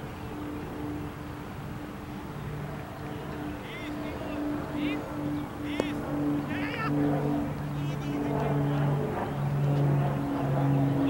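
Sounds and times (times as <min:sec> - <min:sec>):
distant voices: 0:00.0 - 0:11.0
low droning hum: 0:00.0 - 0:11.0.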